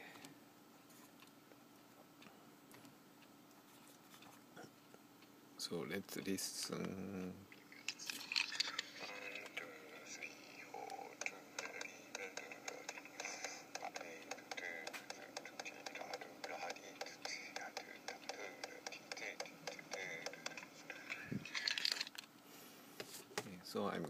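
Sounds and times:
person singing softly: 9.0 - 21.5
rhythmic finger taps: 10.8 - 21.2.

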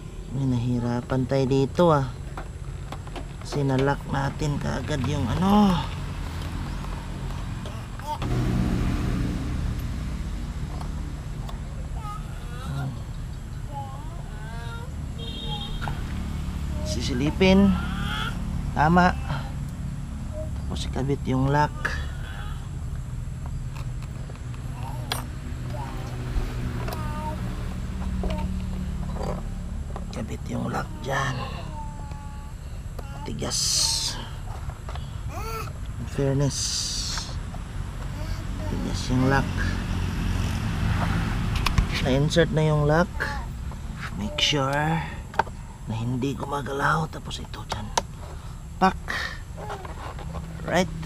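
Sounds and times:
vehicle engine running: 0.0 - 51.0
faint voices: 24.6 - 39.9.

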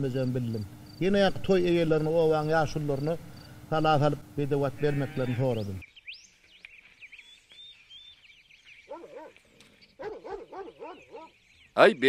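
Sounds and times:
faint bird chirping: 4.8 - 12.0
dog barking in short yelps: 8.9 - 9.4, 10.0 - 11.3.

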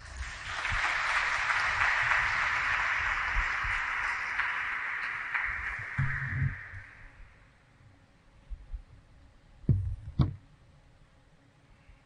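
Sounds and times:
audience applause: 0.0 - 7.5.

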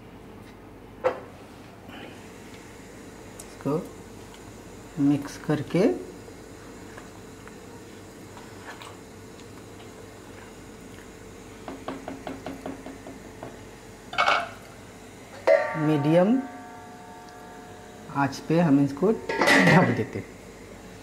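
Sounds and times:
low background hum: 0.0 - 21.0
spatula knocking against pot: 11.7 - 13.6.

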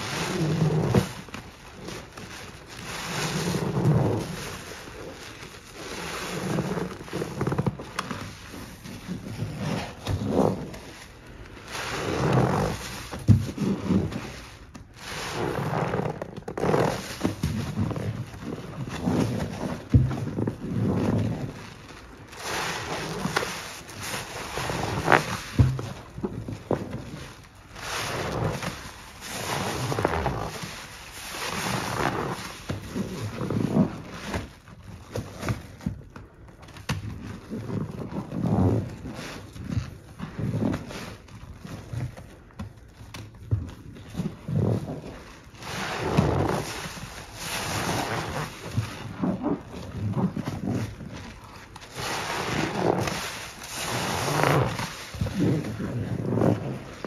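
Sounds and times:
foam crackling: 0.0 - 57.0
wet sponge squelching: 0.0 - 57.0.

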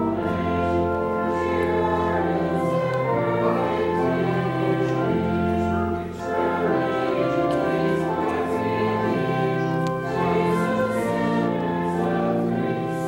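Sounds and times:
organ chords: 0.0 - 13.0
people singing a hymn: 0.0 - 13.0.

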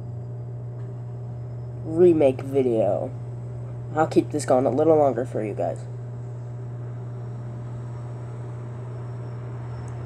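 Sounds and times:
aquarium pump humming: 0.0 - 10.0.

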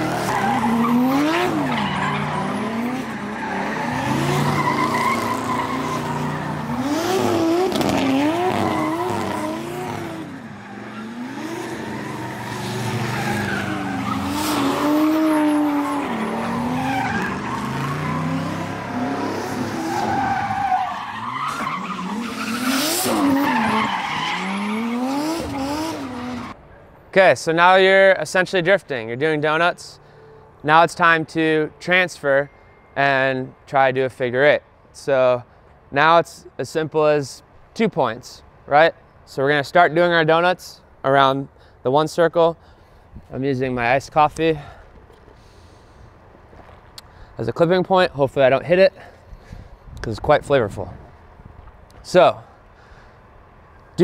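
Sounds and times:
car engines revving: 0.0 - 26.6
tires squealing and hissing: 0.0 - 26.6.

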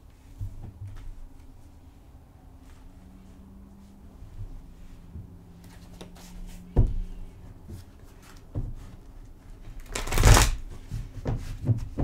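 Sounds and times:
cards being shuffled: 9.7 - 10.7.

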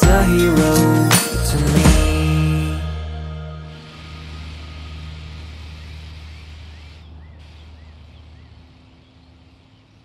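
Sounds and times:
low hum: 2.2 - 10.0.

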